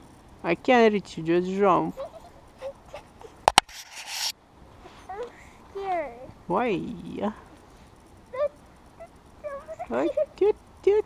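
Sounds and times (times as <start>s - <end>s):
short rustling hiss: 3.0s - 5.8s.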